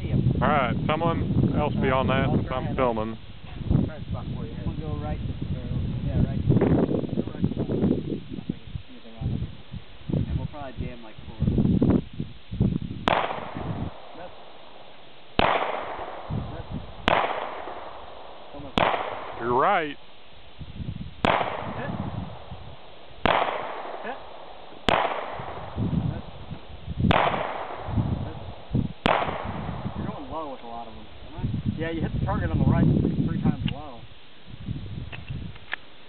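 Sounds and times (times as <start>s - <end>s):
pistol shots with ringing echo: 13.0s - 19.6s, 21.2s - 26.5s, 27.1s - 30.3s.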